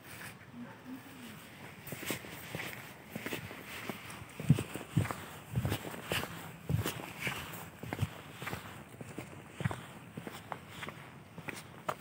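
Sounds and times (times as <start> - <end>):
footsteps on asphalt: 1.4 - 12.0.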